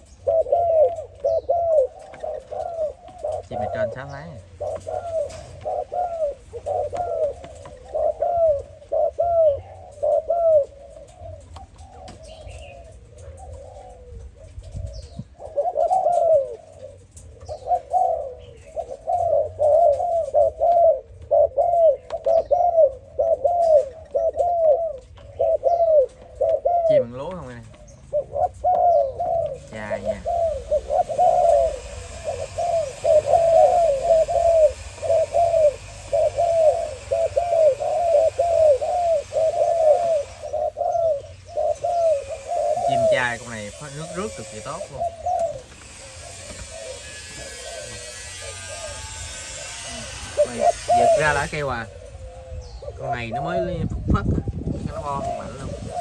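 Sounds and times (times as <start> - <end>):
doves cooing: 0.0 - 56.0.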